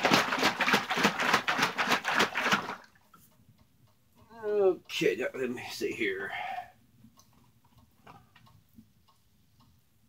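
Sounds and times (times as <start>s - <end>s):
bottle of liquid shaken: 0.0s - 3.0s.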